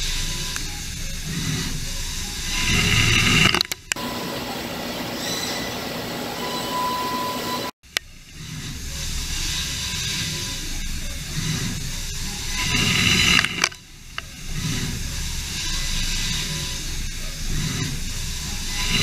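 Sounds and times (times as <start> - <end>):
milling machine cutting metal: 0.0 - 19.0
coolant spraying hiss: 8.1 - 19.0.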